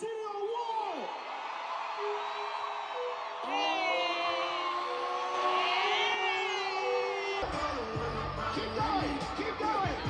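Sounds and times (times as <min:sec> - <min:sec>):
crowd screaming and cheering: 0:00.0 - 0:10.0.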